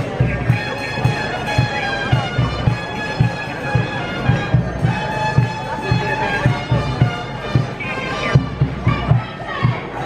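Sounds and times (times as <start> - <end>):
bagpipes playing over drones: 0.0 - 9.6
low beats: 0.0 - 10.0.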